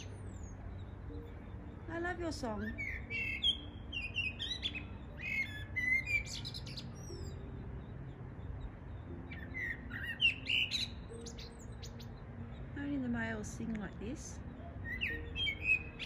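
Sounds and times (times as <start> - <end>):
blackbird singing: 0.0 - 16.0.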